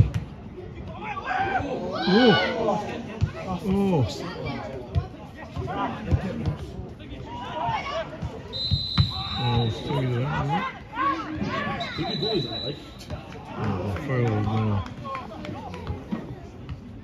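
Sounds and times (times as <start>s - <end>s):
players shouting: 0.8s - 6.4s, 7.1s - 16.0s
referee's whistle blasts: 8.5s - 10.4s, 11.7s - 13.1s.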